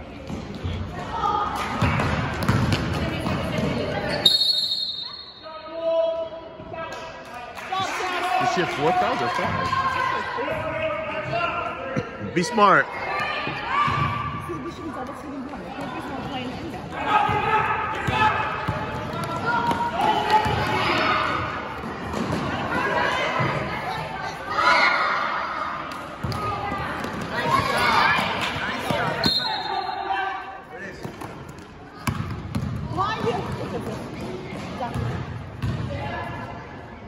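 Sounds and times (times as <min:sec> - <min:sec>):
basketball bouncing: 0:01.8 - 0:03.8, 0:31.0 - 0:36.1
referee's whistle: 0:04.2 - 0:05.5, 0:29.2 - 0:30.1.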